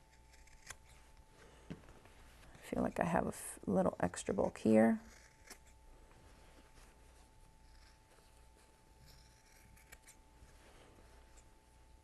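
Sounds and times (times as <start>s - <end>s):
faint room hum: 0.0s - 12.0s
scissors snipping fabric: 9.1s - 10.2s.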